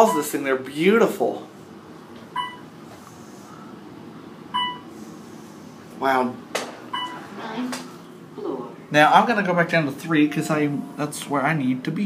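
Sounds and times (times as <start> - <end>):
elevator chime beeping: 0.0 - 0.4, 2.3 - 2.7, 4.5 - 4.9, 6.9 - 7.2, 10.1 - 11.2.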